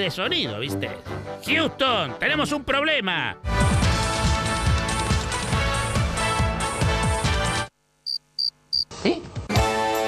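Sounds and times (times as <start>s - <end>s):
music: 0.0s - 7.7s, 9.0s - 10.0s.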